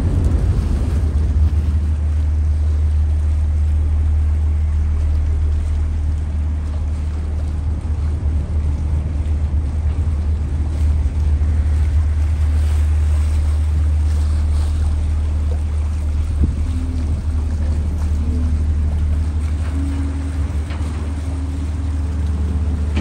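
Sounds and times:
ship engine drone: 0:00.0 - 0:23.0
water rushing: 0:00.0 - 0:23.0
wind: 0:00.0 - 0:23.0.

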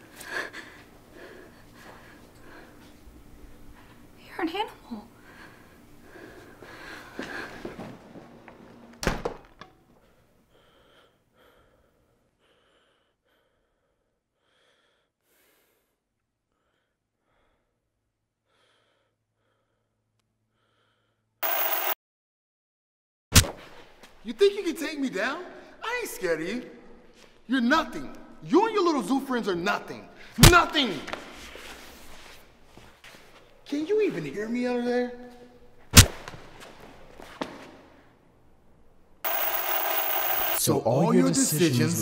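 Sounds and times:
man breathing heavily: 0:05.2 - 0:07.7, 0:10.1 - 0:21.3
harsh static hiss: 0:39.3 - 0:40.6.

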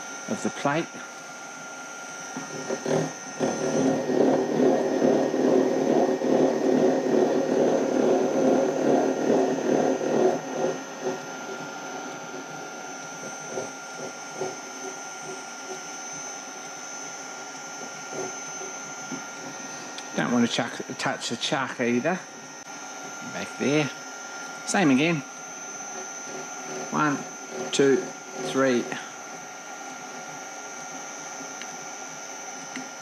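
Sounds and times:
milling machine whine: 0:00.0 - 0:33.0
gear cutter chattering: 0:02.4 - 0:16.8.

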